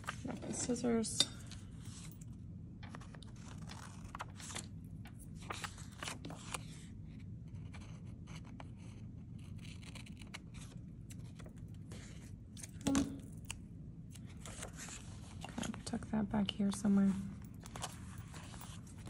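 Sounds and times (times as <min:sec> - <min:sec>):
steady low hum: 0:00.0 - 0:19.0
paper rustling: 0:02.8 - 0:06.9, 0:14.1 - 0:16.0, 0:17.1 - 0:19.0.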